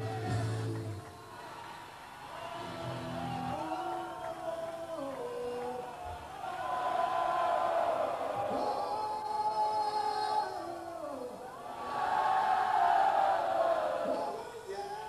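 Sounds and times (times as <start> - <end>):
voices singing long notes: 0.0 - 1.5.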